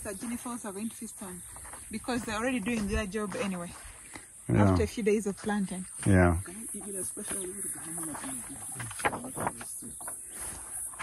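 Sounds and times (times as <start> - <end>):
people talking a few metres off: 5.7 - 9.9.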